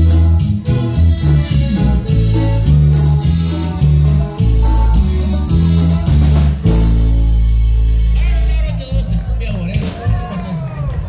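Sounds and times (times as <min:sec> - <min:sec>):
heavy bass line: 0:00.0 - 0:10.6
live band playing dance music: 0:00.0 - 0:11.0.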